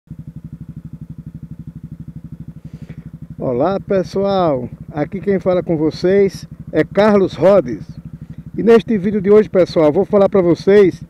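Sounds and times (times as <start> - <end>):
motorcycle engine idling: 0.1 - 11.0.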